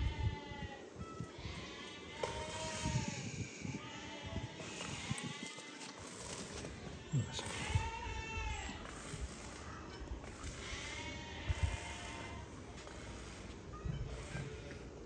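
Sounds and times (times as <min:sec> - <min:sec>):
sheep bleating: 0:01.4 - 0:13.4.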